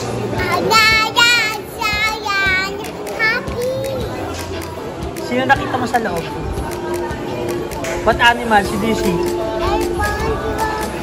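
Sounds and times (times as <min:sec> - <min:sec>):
toddler girl singing: 0:00.3 - 0:04.3.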